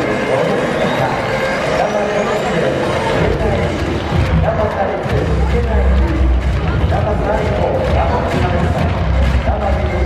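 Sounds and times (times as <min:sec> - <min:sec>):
announcer voice over public address: 0:00.0 - 0:10.0
dense wash of crowd sound: 0:00.0 - 0:10.0.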